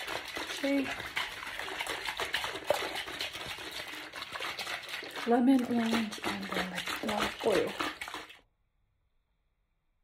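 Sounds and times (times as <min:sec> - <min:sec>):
running water trickle: 0:00.0 - 0:08.4.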